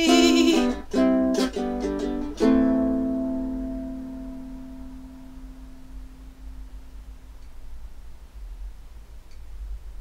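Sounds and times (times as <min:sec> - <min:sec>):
ukulele chord ringing: 0:00.0 - 0:06.9.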